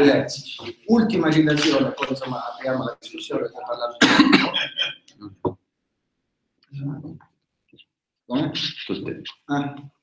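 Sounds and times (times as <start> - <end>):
man coughing: 3.9 - 5.1.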